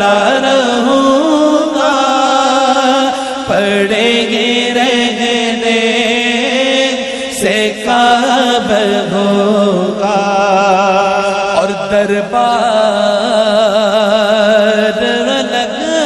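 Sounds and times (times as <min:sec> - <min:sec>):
man singing: 0:00.0 - 0:16.0.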